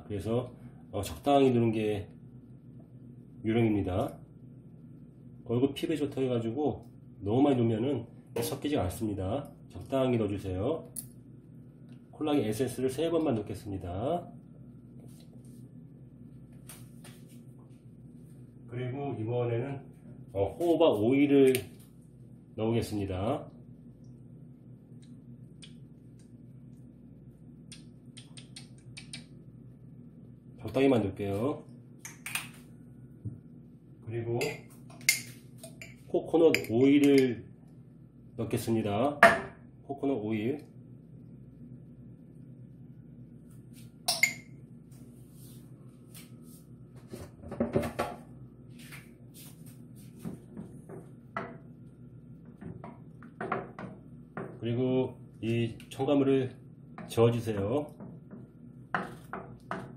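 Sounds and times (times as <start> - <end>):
low steady hum: 0.0 - 59.9.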